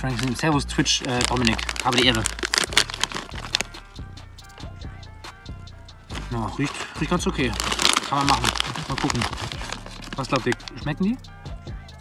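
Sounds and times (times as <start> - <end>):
foil crisp packet crinkling: 0.0 - 3.8, 6.1 - 10.8
quiet background music: 0.0 - 12.0.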